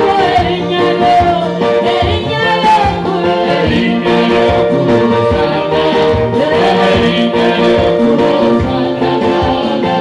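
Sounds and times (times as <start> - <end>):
gospel worship singing: 0.0 - 10.0
instrumental accompaniment: 0.0 - 10.0.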